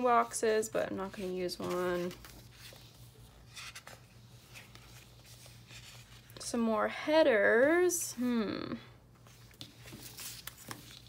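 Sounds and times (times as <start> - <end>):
paper pages rustling: 1.0 - 6.5, 9.2 - 11.0.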